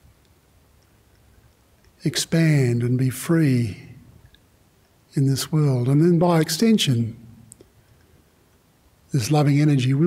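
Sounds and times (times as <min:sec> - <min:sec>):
man speaking: 0:02.0 - 0:04.0, 0:05.1 - 0:07.4, 0:09.1 - 0:10.0
faint click: 0:07.5 - 0:08.6.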